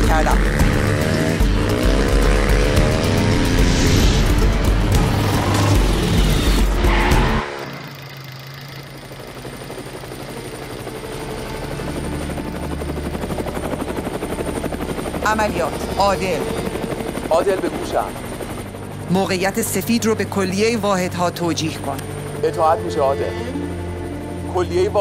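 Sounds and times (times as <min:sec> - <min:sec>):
dirt bike engine revving: 0:00.0 - 0:09.3
helicopter rotor thudding: 0:00.0 - 0:22.4.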